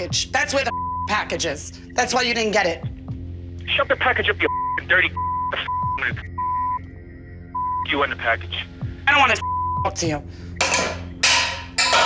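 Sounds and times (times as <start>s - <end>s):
woman's voice: 0.0s - 2.9s, 9.8s - 10.3s
censor bleeps: 4.4s - 6.8s, 7.5s - 8.5s, 9.4s - 9.9s.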